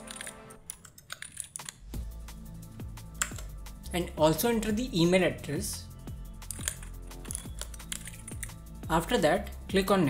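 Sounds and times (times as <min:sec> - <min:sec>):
electronic music: 0:00.0 - 0:00.6
keyboard key clicks: 0:00.0 - 0:01.8, 0:03.2 - 0:03.5.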